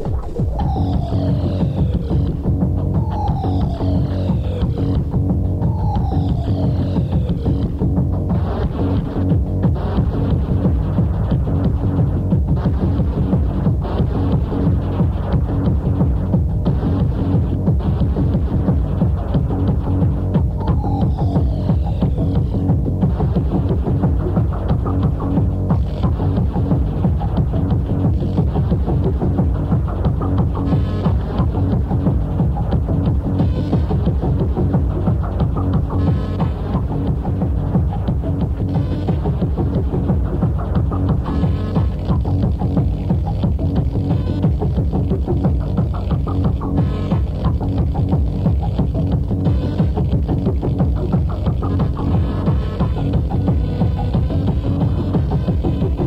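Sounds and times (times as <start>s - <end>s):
falling synth sweep: 0.0s - 12.0s, 12.7s - 42.9s
techno music with driving beat: 0.0s - 56.0s.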